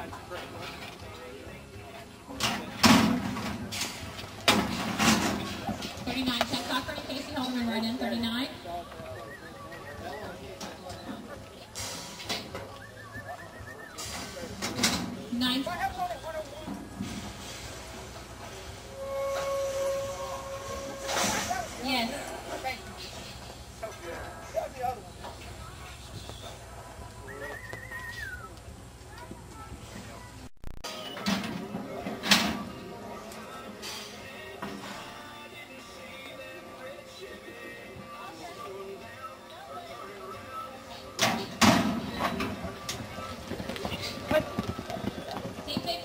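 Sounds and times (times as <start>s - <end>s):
faint music over loudspeaker: 0.0s - 46.0s
metal gate clanging: 19.0s - 21.8s
horses' hooves galloping on dirt: 41.8s - 46.0s.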